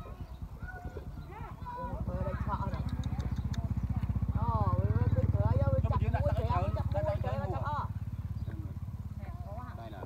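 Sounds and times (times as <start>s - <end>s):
small engine chugging: 0.0s - 10.0s
people talking: 0.6s - 10.0s.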